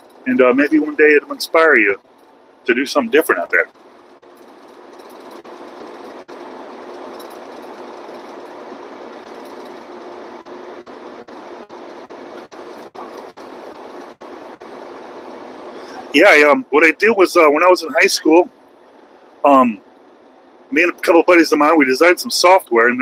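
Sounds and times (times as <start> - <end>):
faint steady hum: 0.0 - 23.0
truck cab road and engine drone: 0.0 - 23.0.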